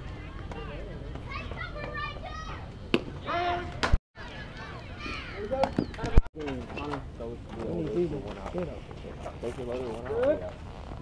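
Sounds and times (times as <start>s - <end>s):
voices shouting and calling out: 0.0s - 10.6s.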